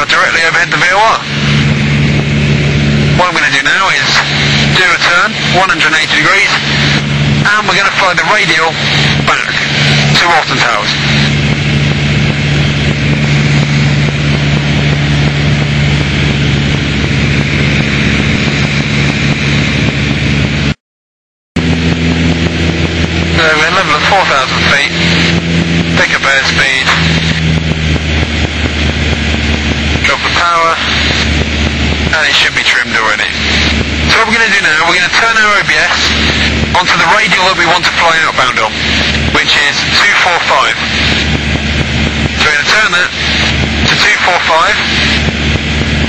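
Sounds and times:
aircraft engine droning: 0.0s - 20.8s, 21.6s - 46.0s.

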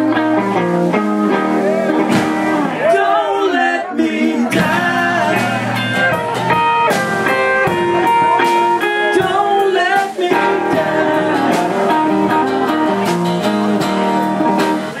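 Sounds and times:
electric guitar: 0.0s - 3.2s, 4.4s - 15.0s
acoustic guitar: 0.0s - 15.0s
person singing: 2.8s - 6.7s, 7.7s - 15.0s.

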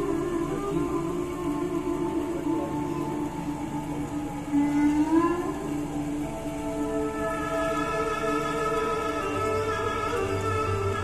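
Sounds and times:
flute playing long notes: 0.0s - 11.0s.

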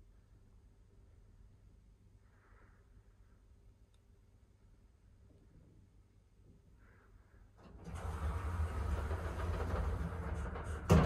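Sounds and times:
lift running with low rumble: 7.7s - 11.0s.

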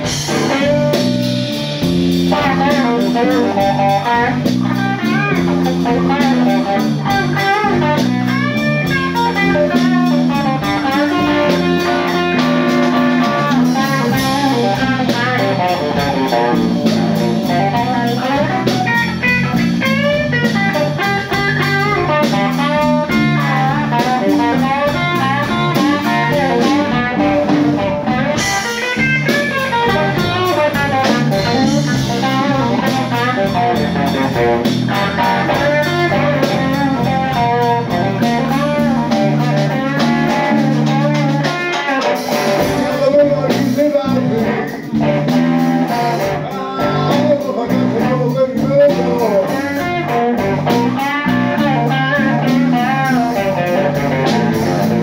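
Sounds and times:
bass line: 0.0s - 55.0s
drum kit: 0.0s - 55.0s
electric guitar lines: 0.0s - 55.0s.

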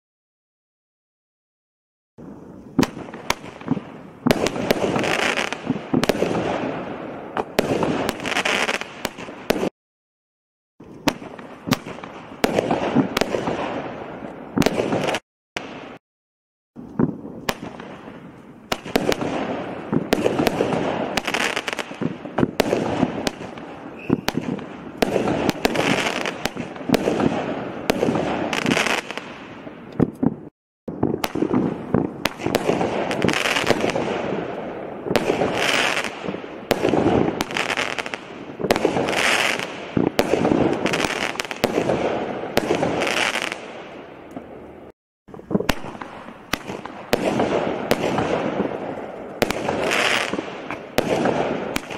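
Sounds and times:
fireworks firing sharp reports: 2.2s - 9.7s, 11.0s - 16.0s, 17.0s - 44.6s, 45.3s - 51.9s.

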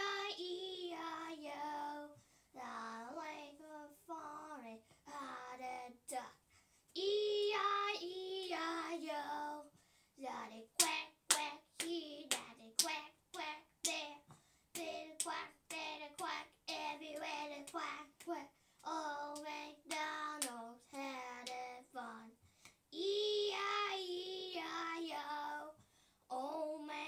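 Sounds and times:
girl singing: 0.0s - 27.0s
hands clapping: 10.8s - 16.4s, 17.2s - 21.7s.

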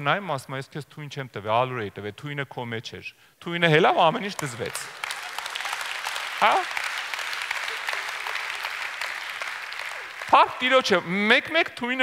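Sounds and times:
audience applauding: 4.2s - 11.6s.

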